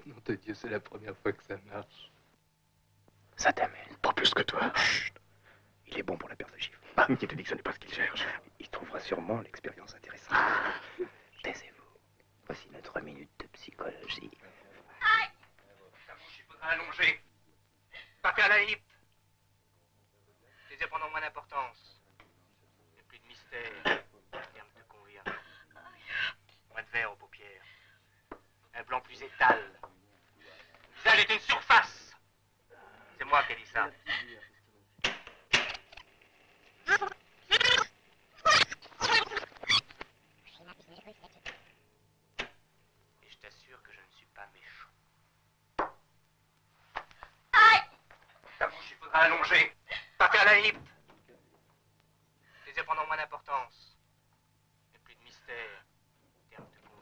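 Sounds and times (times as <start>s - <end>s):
tape rewinding with squealing voice: 36.9s - 41.4s.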